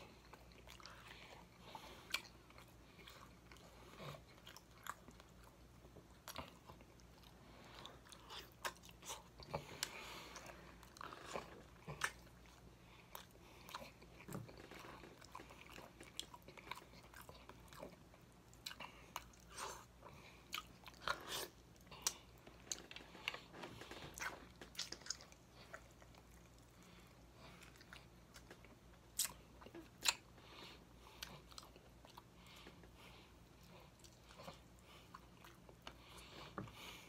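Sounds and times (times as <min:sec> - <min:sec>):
close chewing: 0:00.0 - 0:37.0.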